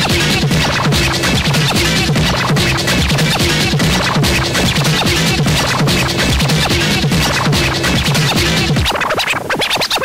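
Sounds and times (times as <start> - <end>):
fast electronic dance music: 0.0 - 10.0
turntable scratching: 0.0 - 10.0.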